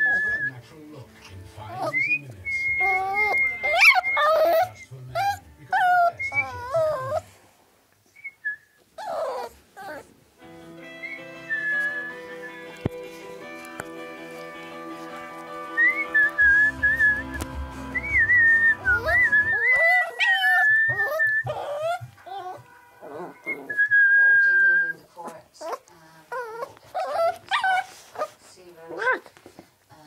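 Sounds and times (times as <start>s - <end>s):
puppies whining and yelping: 1.6s - 7.3s, 8.9s - 10.1s, 15.8s - 24.1s, 25.6s - 28.4s
person whistling: 11.0s - 12.6s, 15.7s - 20.0s.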